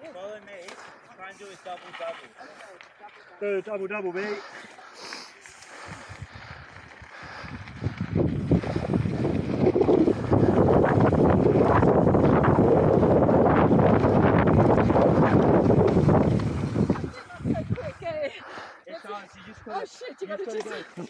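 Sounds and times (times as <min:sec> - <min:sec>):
bike tyres rolling on dirt: 0:00.0 - 0:18.2
wind rushing over microphone: 0:05.8 - 0:18.1.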